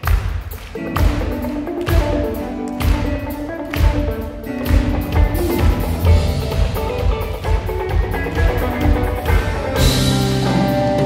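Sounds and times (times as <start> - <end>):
drum kit beat: 0.0 - 11.0
live band music: 0.0 - 11.0.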